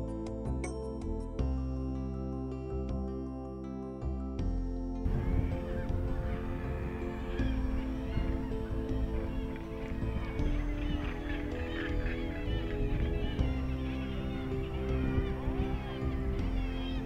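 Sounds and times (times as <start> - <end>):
background music: 0.0 - 17.0
seabird colony calling: 5.1 - 17.0.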